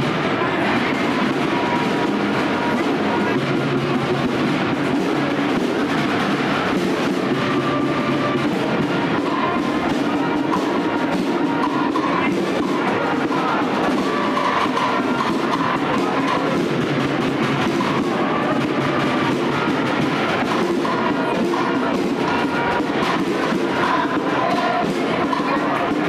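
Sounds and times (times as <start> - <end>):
processional march with drums: 0.0 - 26.0.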